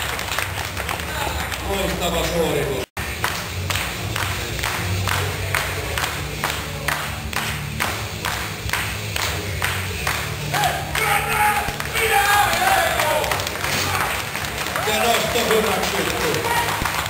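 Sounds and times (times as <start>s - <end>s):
crowd clapping in unison: 0.0s - 17.0s.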